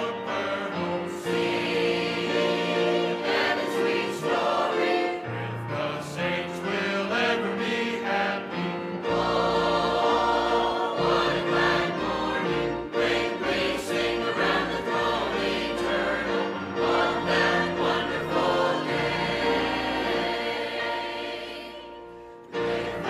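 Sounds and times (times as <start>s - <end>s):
mixed choir singing: 0.0s - 23.0s.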